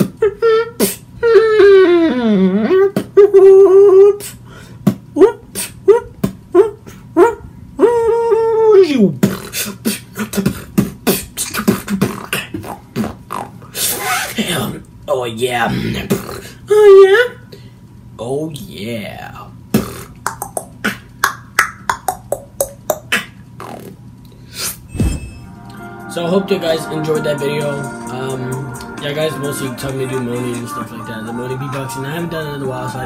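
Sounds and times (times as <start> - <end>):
beatboxing mouth clicks: 0.0 - 1.0, 2.6 - 3.3, 4.2 - 7.0, 9.2 - 14.4, 16.1 - 16.6, 19.7 - 24.8.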